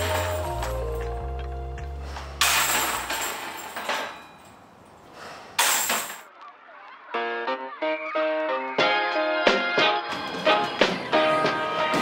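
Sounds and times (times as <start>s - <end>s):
background music: 0.0s - 3.0s, 7.0s - 12.0s.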